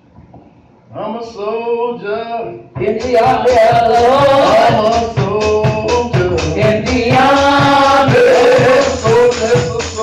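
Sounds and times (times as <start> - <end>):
drum kit beat: 2.6 - 10.0
woman singing gospel song: 2.8 - 5.3, 6.1 - 10.0.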